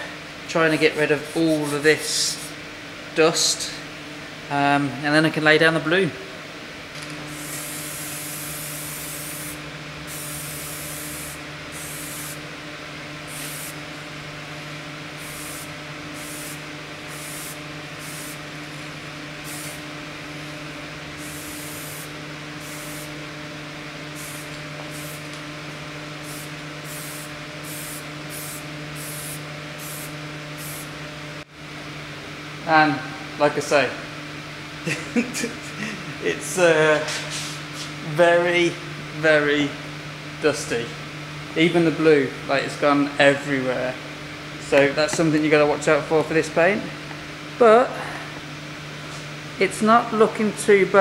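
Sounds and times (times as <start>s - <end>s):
steady low hum: 0.0s - 51.0s
aerosol spray can hissing: 7.3s - 12.4s, 13.3s - 13.8s, 15.2s - 18.4s, 19.4s - 19.8s, 21.2s - 23.1s, 24.2s - 25.3s, 26.2s - 30.9s.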